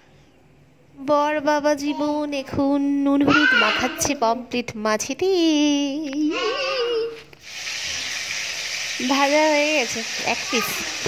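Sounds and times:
fish sizzling in hot oil: 0:07.4 - 0:11.0.

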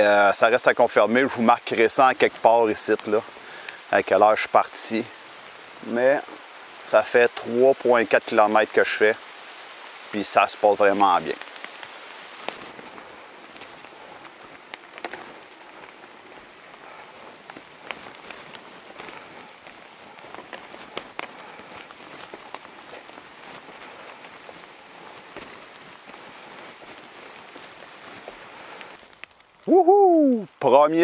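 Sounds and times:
steady rain in forest: 0:00.0 - 0:31.0.

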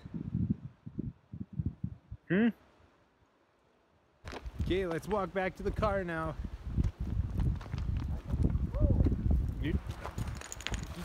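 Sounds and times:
footsteps on gravel: 0:04.2 - 0:05.9, 0:06.7 - 0:08.7.

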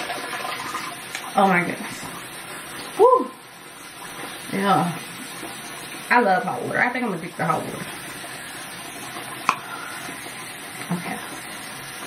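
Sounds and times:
tap running water: 0:00.0 - 0:12.0.

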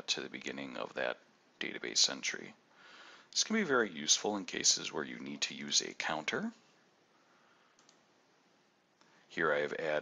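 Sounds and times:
faint room hiss: 0:00.0 - 0:10.0
faint clicks: 0:07.7 - 0:08.1.

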